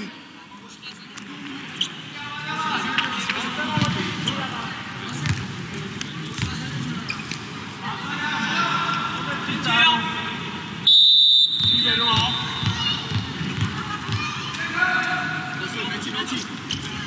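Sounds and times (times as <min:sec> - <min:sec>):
crowd chatter: 0:00.0 - 0:17.0
referee's whistle: 0:10.8 - 0:12.6
ball bouncing: 0:11.6 - 0:14.3.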